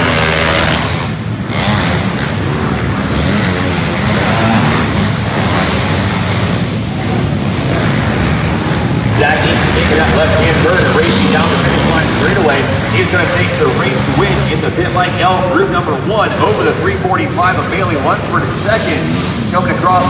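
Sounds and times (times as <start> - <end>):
pit bike engines racing: 0.0 - 20.0.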